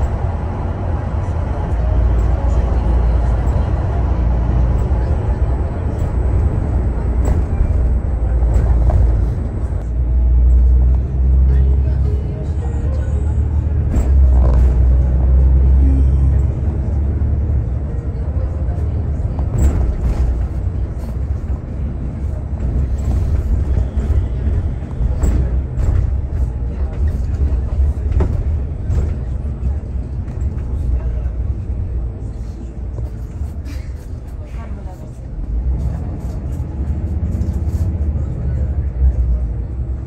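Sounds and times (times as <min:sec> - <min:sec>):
coach engine and tyres rumbling: 0:00.0 - 0:40.0.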